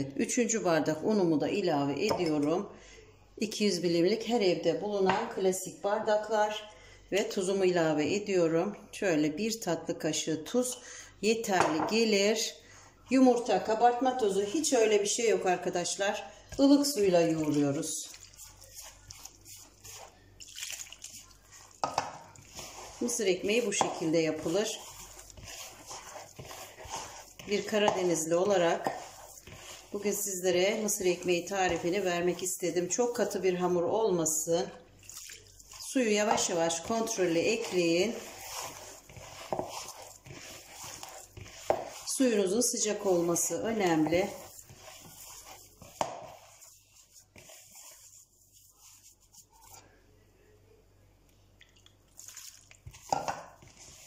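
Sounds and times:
hand kneading dough: 13.0 - 50.0, 52.0 - 54.0.

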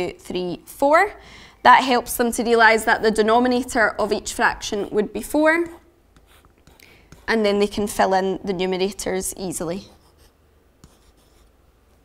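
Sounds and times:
pen scratching while writing: 6.2 - 7.4, 9.8 - 11.5.

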